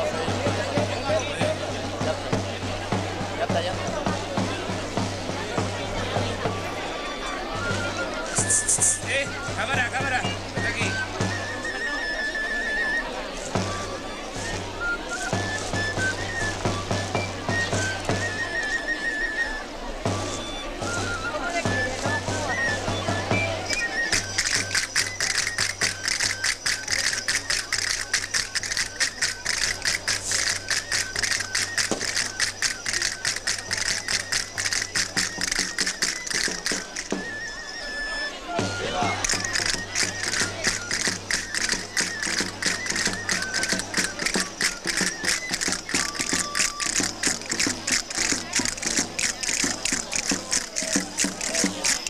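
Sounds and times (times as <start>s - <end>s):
pipe and drum dance music: 8.4s - 11.4s, 23.7s - 37.4s, 39.2s - 52.0s.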